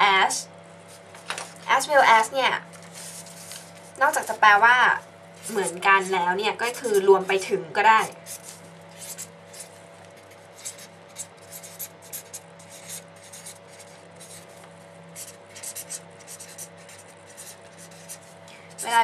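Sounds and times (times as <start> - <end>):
pen scratching while writing: 10.5 - 14.5, 15.2 - 18.2.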